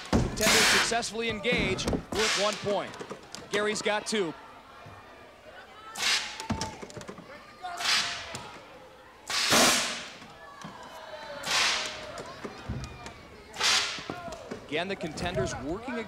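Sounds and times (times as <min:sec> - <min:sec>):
tennis ball cannon blasts: 0:00.2 - 0:01.0, 0:02.1 - 0:02.8, 0:09.3 - 0:10.2.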